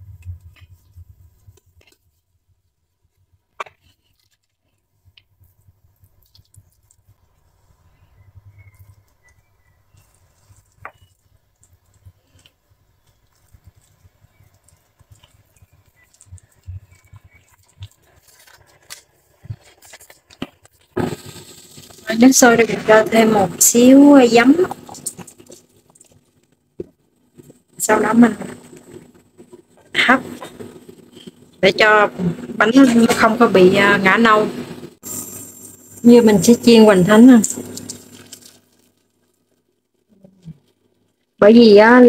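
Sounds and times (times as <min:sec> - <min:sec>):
hands shaping dough: 0:00.0 - 0:41.3.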